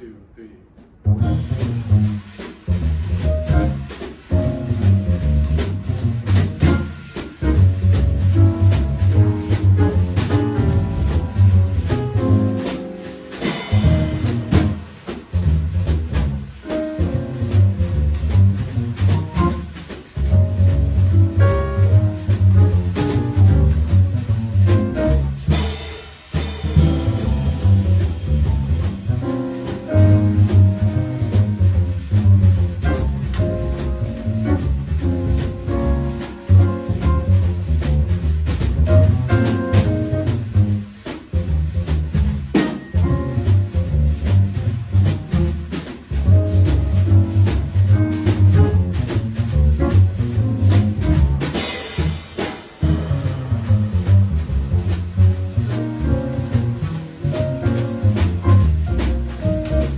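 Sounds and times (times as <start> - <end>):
jazz drum kit with cymbals: 0.8 - 59.9
upright bass plucked: 1.0 - 25.7, 26.4 - 59.9.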